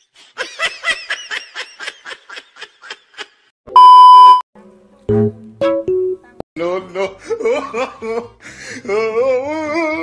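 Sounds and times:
person laughing: 6.9 - 9.1.

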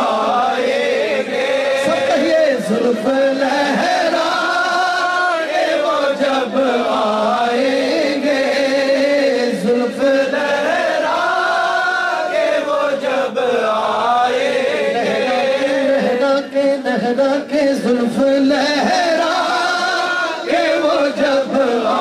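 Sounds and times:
man singing devotional song: 0.0 - 22.0.

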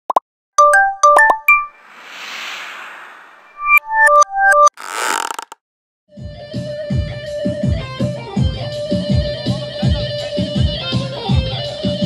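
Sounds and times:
soft whoosh: 1.8 - 3.9.

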